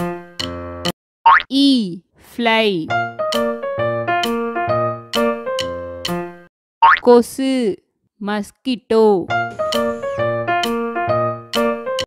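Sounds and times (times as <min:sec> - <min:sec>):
children's background music: 0:02.5 - 0:06.5, 0:09.1 - 0:12.0.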